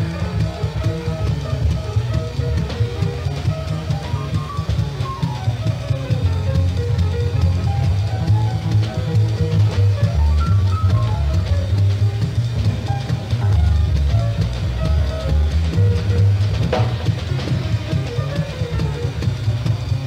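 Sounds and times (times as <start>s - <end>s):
drum kit: 0.0s - 20.0s
plucked upright bass: 0.0s - 20.0s
small-group jazz: 0.0s - 20.0s.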